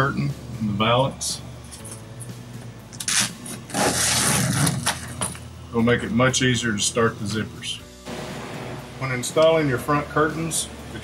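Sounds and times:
velcro strip rasping apart: 3.0 - 5.3.

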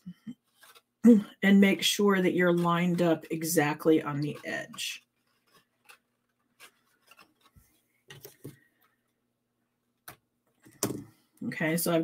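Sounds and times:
cardstock box rustling: 0.4 - 0.9, 2.4 - 8.8.

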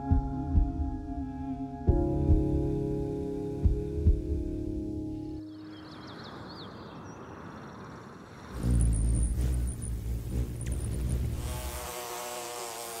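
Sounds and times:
bumblebee buzzing in flight: 8.4 - 13.0.

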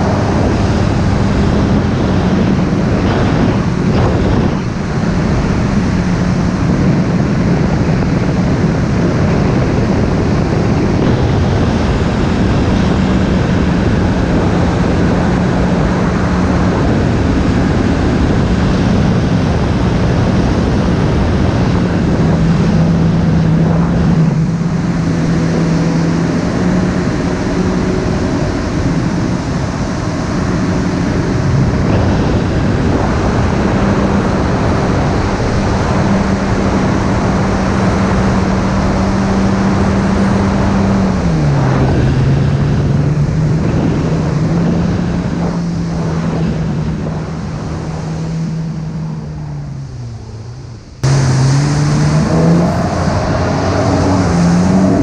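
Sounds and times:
personal watercraft engine running: 0.0 - 55.0
wind on microphone: 0.0 - 55.0
rushing water: 51.0 - 55.0.

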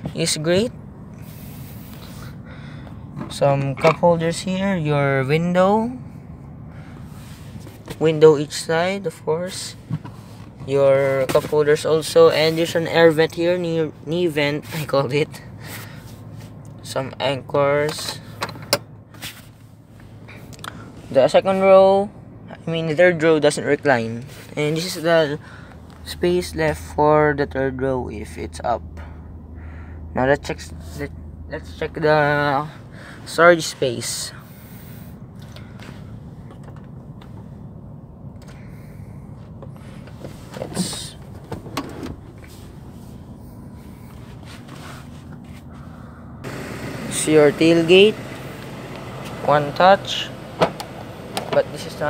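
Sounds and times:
steady low hum: 0.0 - 17.6, 18.2 - 52.0.

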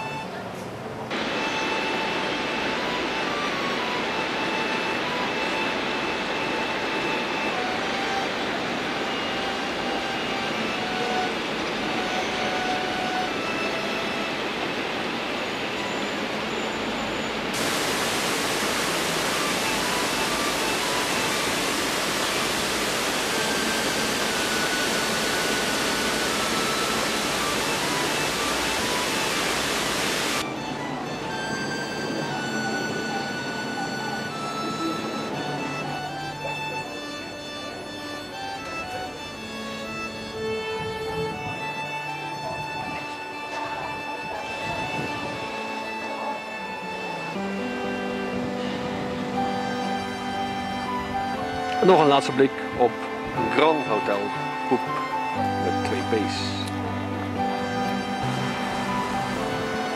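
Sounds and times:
faint background music: 0.0 - 59.9
loud rushing noise: 1.1 - 33.5, 57.3 - 59.9.

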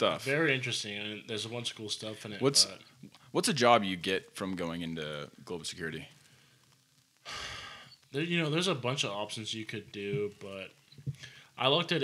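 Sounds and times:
man sighing: 7.3 - 7.9.

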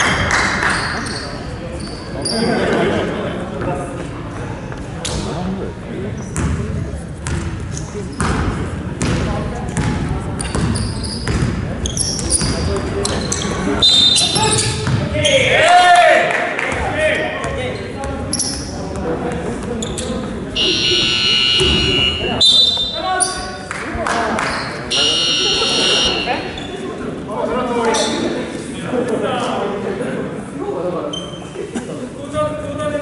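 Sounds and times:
players' voices: 0.0 - 33.0
basketball bouncing on wooden floor: 9.8 - 11.6
electronic game buzzer: 20.6 - 22.2, 25.0 - 26.3.

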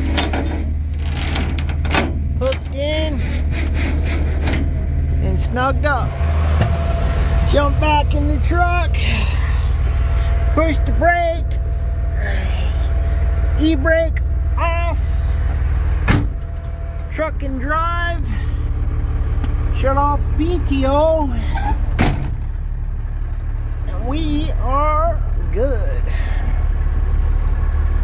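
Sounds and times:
truck engine running: 0.0 - 28.0.

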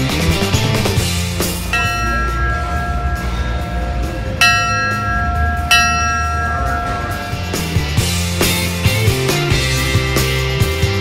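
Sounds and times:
rock music: 0.0 - 11.0
fire engine bell ringing: 1.0 - 10.1.

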